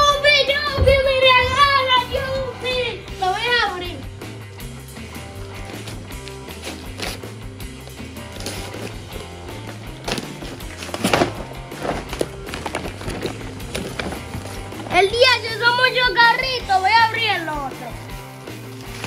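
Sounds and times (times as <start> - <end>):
background music with bass line: 0.0 - 19.0
wrapping paper tearing and rustling: 5.4 - 9.3, 10.1 - 14.9, 18.6 - 19.0.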